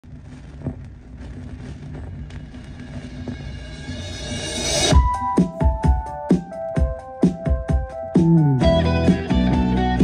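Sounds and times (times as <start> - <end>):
vinyl crackles and pops: 0.0 - 3.7
vinyl record surface noise: 0.0 - 7.6.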